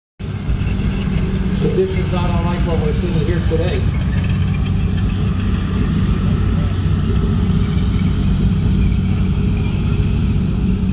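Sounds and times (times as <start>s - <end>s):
tank engine droning: 0.2s - 10.9s.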